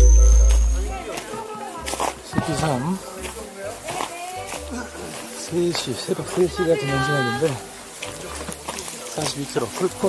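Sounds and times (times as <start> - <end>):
indistinct talking: 0.0 - 10.0.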